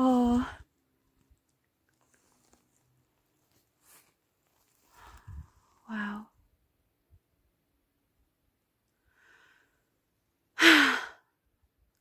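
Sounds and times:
woman breathing in: 9.1 - 9.9.

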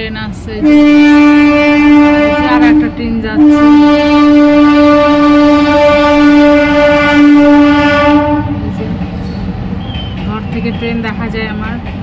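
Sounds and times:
train horn blast: 0.6 - 8.7.

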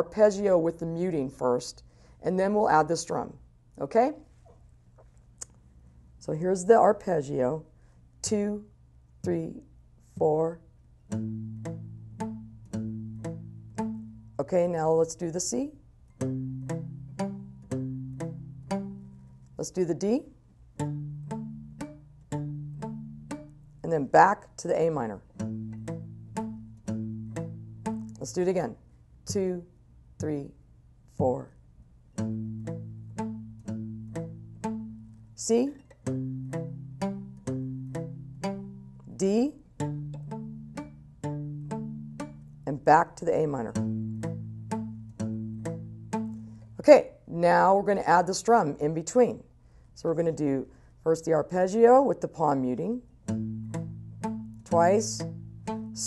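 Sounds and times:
acoustic guitar arpeggio: 11.0 - 14.4, 16.1 - 24.1, 24.8 - 28.5, 32.1 - 46.8, 53.2 - 56.0.

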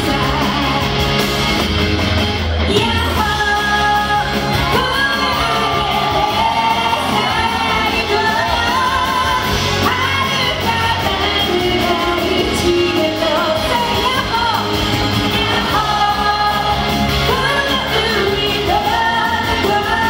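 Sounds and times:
woman singing into microphone: 0.0 - 1.0, 2.7 - 20.0
loud amplified backing music: 0.0 - 20.0.

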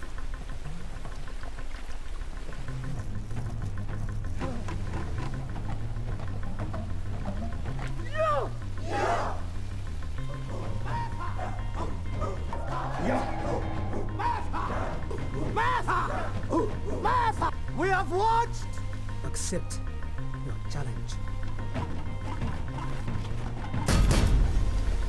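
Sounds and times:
rising vocal cries: 8.0 - 9.6, 10.2 - 17.6
dramatic orchestral score: 8.0 - 25.0.

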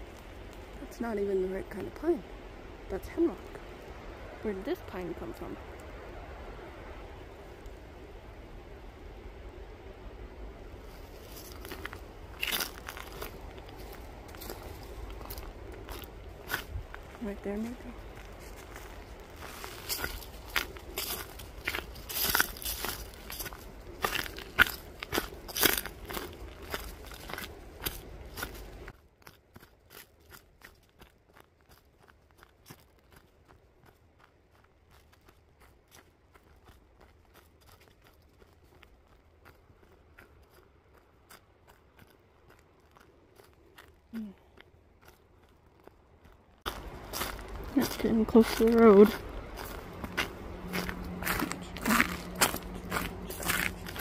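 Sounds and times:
footsteps crunching on dirt and leaves: 10.8 - 54.0.

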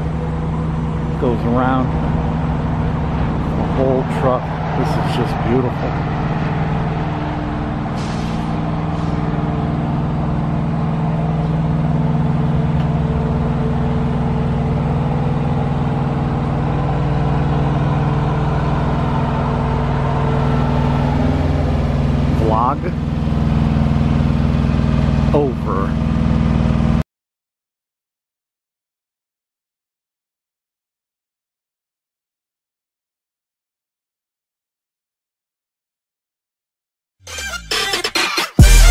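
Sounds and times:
truck engine idling: 0.0 - 27.0, 37.3 - 38.9
short rising squeals: 3.2 - 12.4, 37.2 - 38.9.

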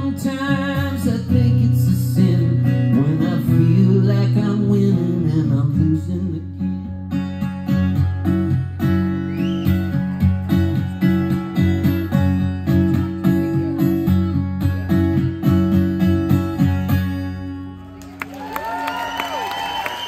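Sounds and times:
amplified acoustic guitar: 0.0 - 18.0.

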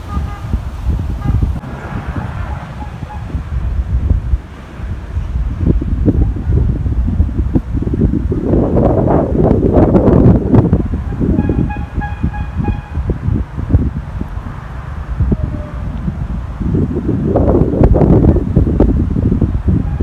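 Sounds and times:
steady horn note: 0.0 - 0.6, 11.0 - 13.0
wind buffeting microphone: 0.0 - 20.0.

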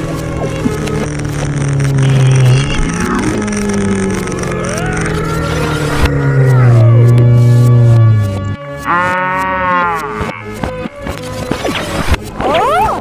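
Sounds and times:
motorcycle engine revving: 0.0 - 12.3.

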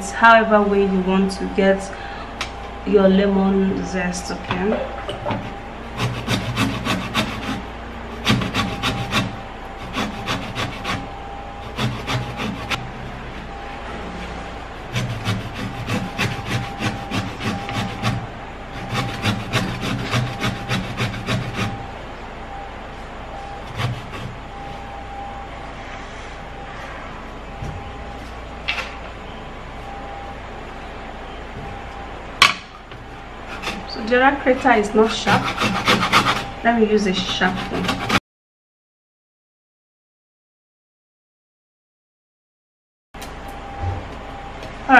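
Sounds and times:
lemon rasping on metal grater: 5.9 - 12.8, 14.8 - 21.8, 33.5 - 38.2.

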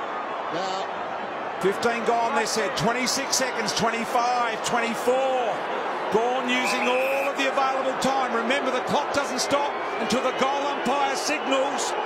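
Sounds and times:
stadium crowd noise: 0.0 - 12.0
man commentating: 1.6 - 12.0.

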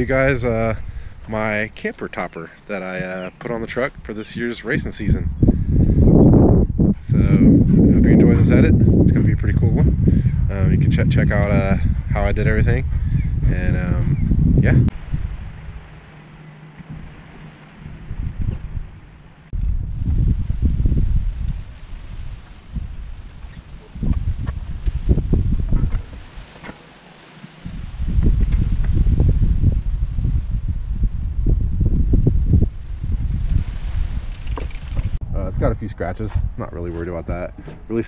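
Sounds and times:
wind buffeting microphone: 0.0 - 26.8, 27.5 - 38.0.

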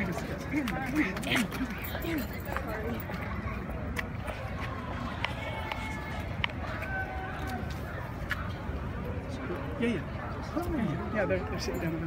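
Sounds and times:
people's voices: 0.0 - 12.0.

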